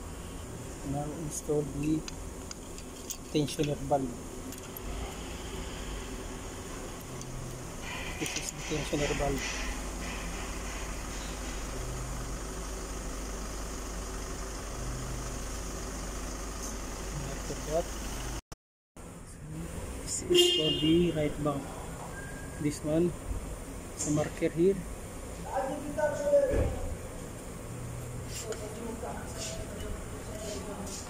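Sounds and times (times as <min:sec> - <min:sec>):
low background hum: 0:00.0 - 0:18.0
low mechanical rumble: 0:00.0 - 0:18.4.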